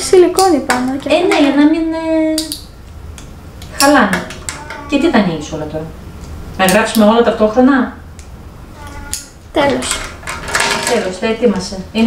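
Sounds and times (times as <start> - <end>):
indistinct voices talking: 3.7 - 6.0, 6.6 - 12.0.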